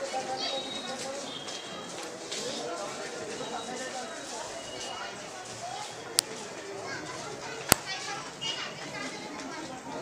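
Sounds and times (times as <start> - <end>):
crowd voices chattering: 0.0 - 10.0
children's voices: 6.7 - 10.0.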